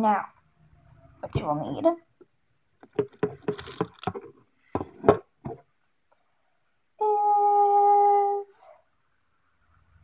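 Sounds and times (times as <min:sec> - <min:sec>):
objects knocking and clattering: 0:02.8 - 0:05.7.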